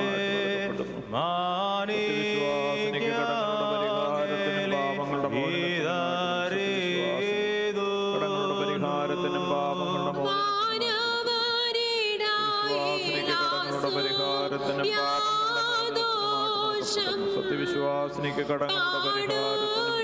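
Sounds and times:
person chanting into a microphone: 0:00.0 - 0:20.0.

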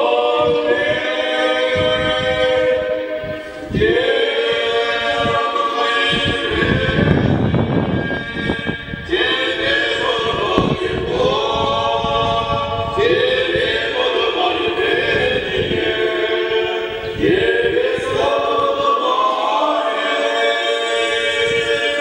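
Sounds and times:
unaccompanied choir singing: 0:00.0 - 0:22.0.

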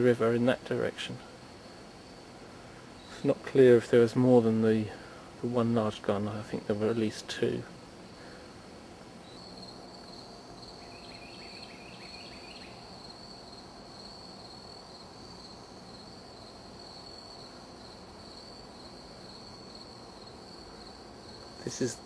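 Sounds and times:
insects trilling: 0:00.0 - 0:22.0
lower insect chirps: 0:09.2 - 0:22.0.

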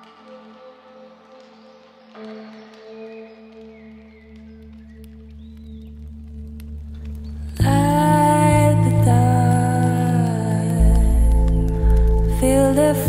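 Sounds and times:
ambient electronic music: 0:00.0 - 0:13.0
low drone: 0:00.0 - 0:13.0.

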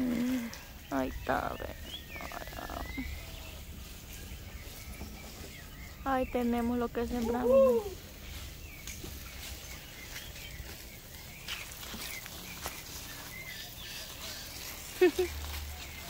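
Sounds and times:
dry branches and leaves rustling: 0:00.0 - 0:16.0
outdoor background noise: 0:00.0 - 0:16.0.

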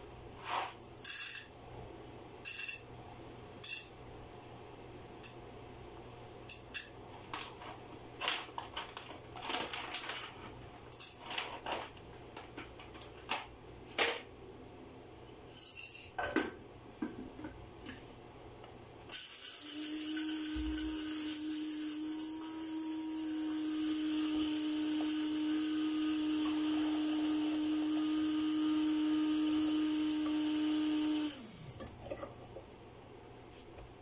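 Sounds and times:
small electric motor whining: 0:19.2 - 0:31.8.

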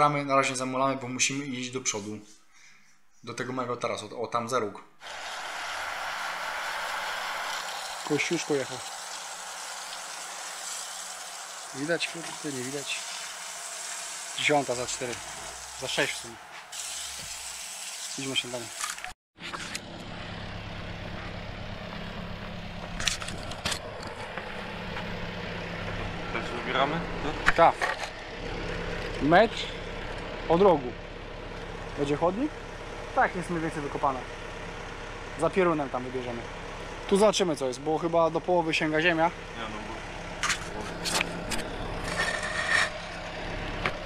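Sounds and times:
plate compactor engine hum: 0:19.4 - 0:44.0
rough scrape: 0:40.4 - 0:43.4
scraping and knocking: 0:42.0 - 0:43.3.

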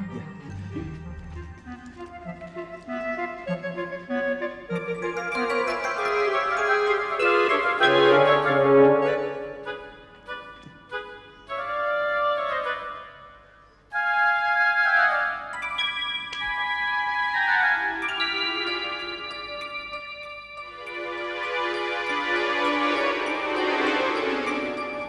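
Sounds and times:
keyboard chords with melody: 0:04.0 - 0:12.1, 0:15.2 - 0:25.0.

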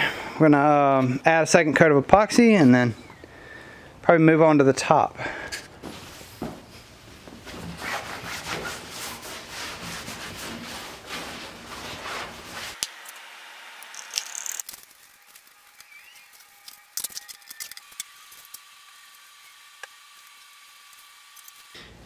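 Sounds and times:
fiberglass cloth rustling: 0:05.7 - 0:12.8
brushing epoxy onto wood: 0:07.8 - 0:12.8.

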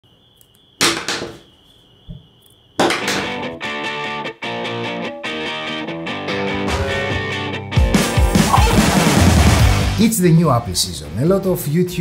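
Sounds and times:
electric guitar music: 0:03.2 - 0:09.9.

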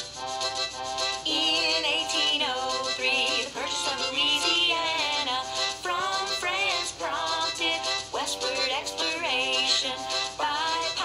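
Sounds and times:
upbeat instrumental backing track: 0:00.0 - 0:11.0
woman singing: 0:01.3 - 0:11.0.

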